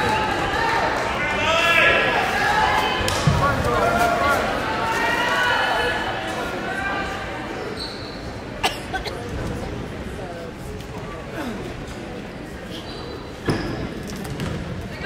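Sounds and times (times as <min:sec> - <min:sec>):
chatter of people: 0:00.0 - 0:15.0.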